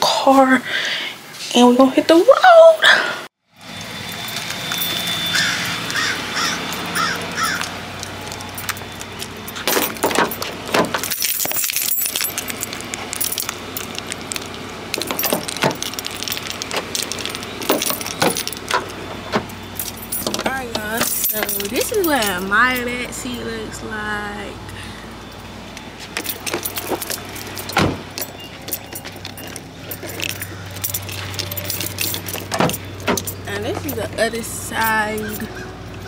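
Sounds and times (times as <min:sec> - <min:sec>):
bird calling: 0:04.8 - 0:09.5, 0:28.2 - 0:31.7, 0:35.1 - 0:36.0
handling clicks and knocks: 0:05.9 - 0:22.5, 0:25.3 - 0:34.2.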